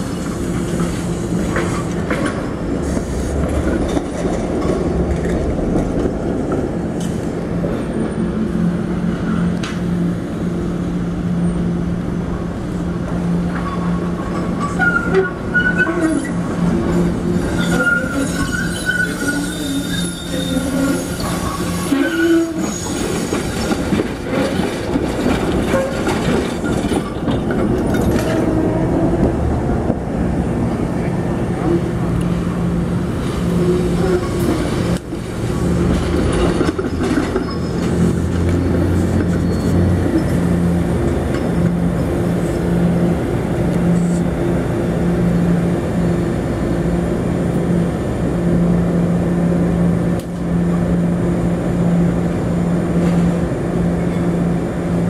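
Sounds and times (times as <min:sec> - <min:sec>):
deep rumble of passing trolley: 0:00.0 - 0:55.0
trolley wheels squealing: 0:13.5 - 0:16.4, 0:17.4 - 0:24.7, 0:36.3 - 0:40.4.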